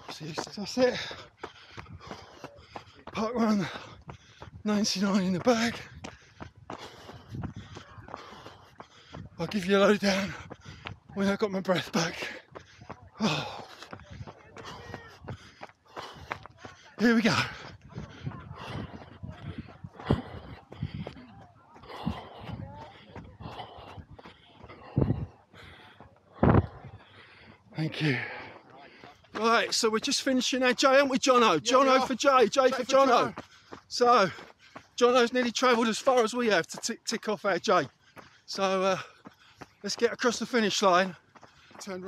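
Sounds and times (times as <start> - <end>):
person panting hard: 0.0 - 11.2, 11.8 - 30.1, 31.3 - 35.0, 37.7 - 42.0
footsteps: 0.0 - 42.0.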